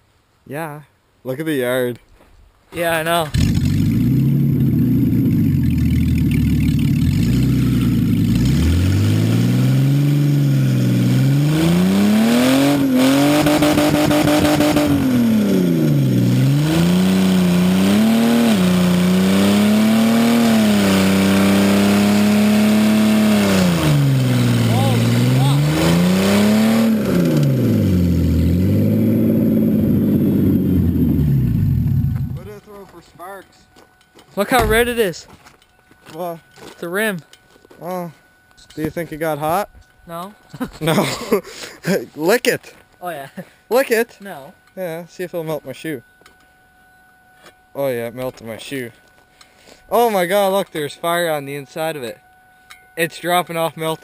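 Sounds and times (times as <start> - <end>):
car engine revving: 3.3 - 32.5
tire spinning on gravel: 3.3 - 32.9.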